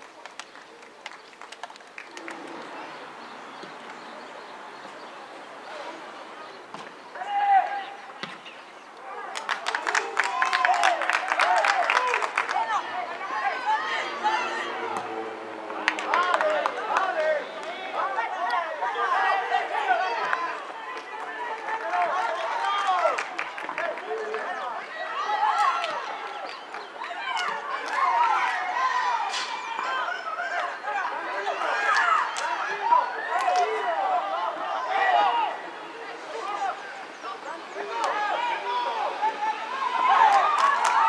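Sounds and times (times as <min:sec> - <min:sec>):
voices shouting and calling: 0:02.1 - 0:41.0.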